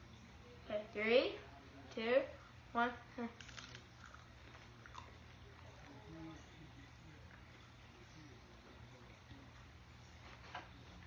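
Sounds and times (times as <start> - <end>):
low room hum: 0.0 - 11.0
biting and chewing pepper: 3.4 - 5.8.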